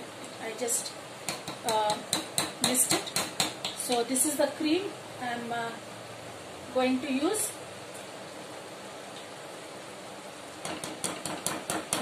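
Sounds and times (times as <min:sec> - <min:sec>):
low hiss: 0:00.0 - 0:10.8.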